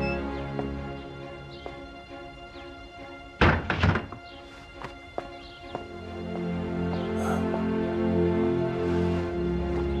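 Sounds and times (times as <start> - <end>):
background music: 0.0 - 10.0
door rattling: 3.4 - 4.3
wooden door knocking shut: 3.4 - 4.3.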